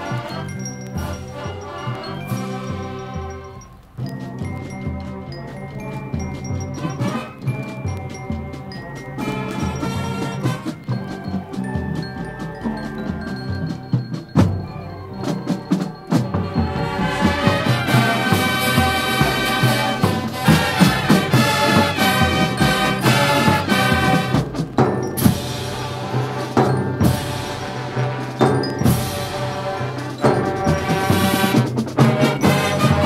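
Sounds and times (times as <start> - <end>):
drum strikes: 0.0 - 33.0
marching band playing: 0.0 - 33.0.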